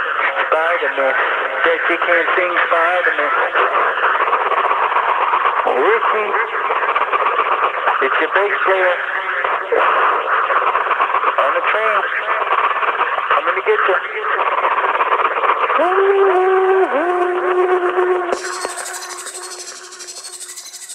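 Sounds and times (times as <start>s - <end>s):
muffled radio-like sampled voices: 0.0s - 20.9s
wavering held tone: 18.4s - 20.9s.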